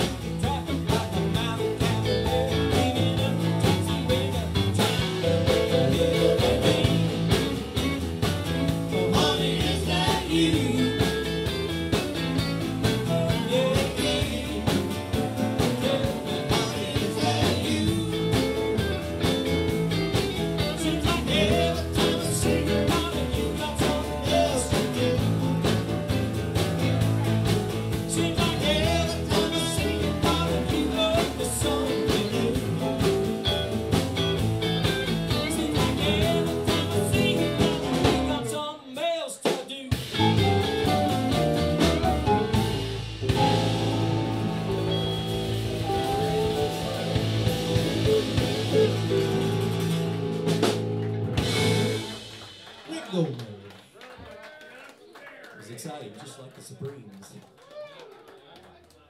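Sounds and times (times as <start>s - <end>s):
live blues rock band playing: 0.0s - 38.8s, 39.8s - 52.9s.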